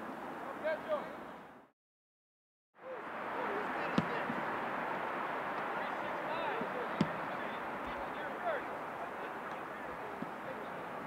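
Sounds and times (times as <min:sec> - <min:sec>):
players' voices chattering: 0:02.8 - 0:11.0
football being kicked: 0:03.9 - 0:04.4, 0:07.0 - 0:07.2.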